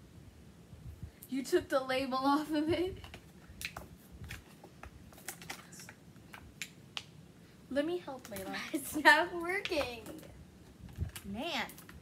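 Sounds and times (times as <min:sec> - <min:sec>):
plastic packaging clicking and crackling: 0:03.0 - 0:07.1, 0:10.9 - 0:12.0.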